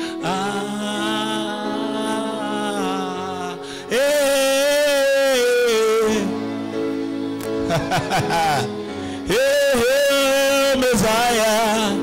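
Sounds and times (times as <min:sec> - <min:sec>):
man singing a long note: 0:00.0 - 0:06.5, 0:08.2 - 0:12.0.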